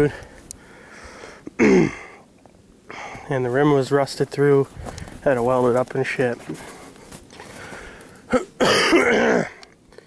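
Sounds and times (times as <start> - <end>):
man coughing: 1.6 - 2.2, 8.3 - 9.6.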